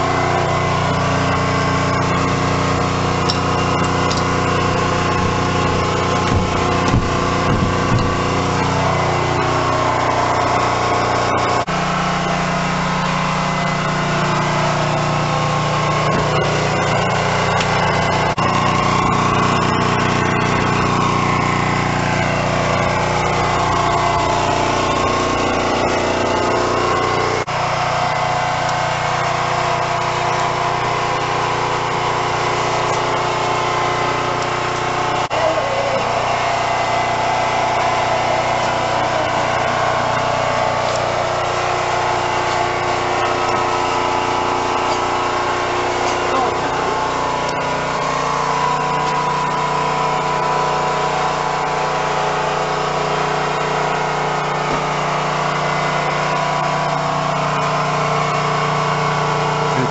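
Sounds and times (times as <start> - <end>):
diesel railcar engine drone: 0.0 - 59.9.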